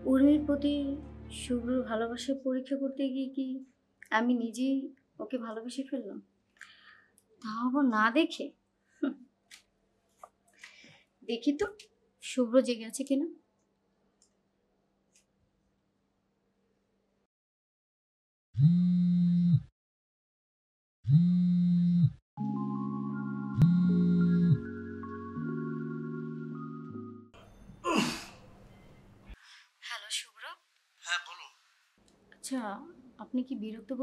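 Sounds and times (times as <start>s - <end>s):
background music: 0.0s - 2.4s, 22.4s - 27.7s
man sighing: 27.8s - 28.5s
woman speaking: 29.8s - 31.6s, 32.4s - 34.0s.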